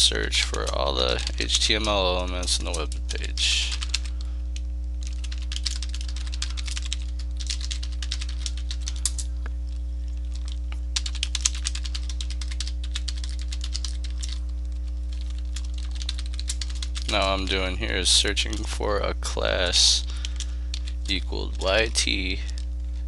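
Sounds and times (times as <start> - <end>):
low electrical hum: 0.0 - 23.0
computer keyboard typing: 0.4 - 4.2, 5.0 - 9.3, 10.2 - 17.5, 18.2 - 18.7, 20.1 - 22.6.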